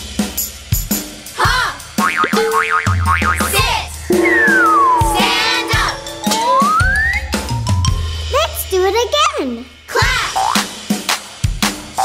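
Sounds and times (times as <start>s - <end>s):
children's music with drum beat: 0.0s - 12.0s
springy cartoon boings: 2.1s - 7.4s
descending slide whistle: 4.1s - 7.5s.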